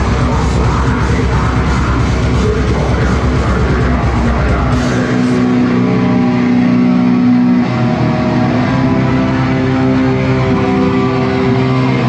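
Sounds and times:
distorted electric guitars: 0:00.0 - 0:12.0.

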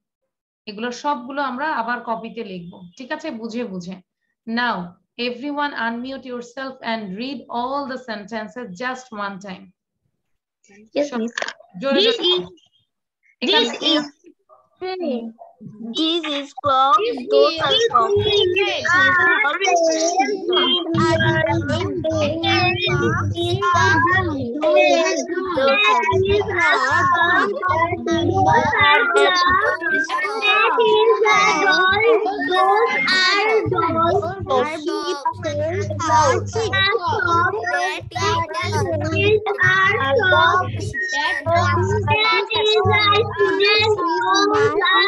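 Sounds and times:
children reading aloud in chorus: 0:13.5 - 0:14.2, 0:16.0 - 0:45.0.

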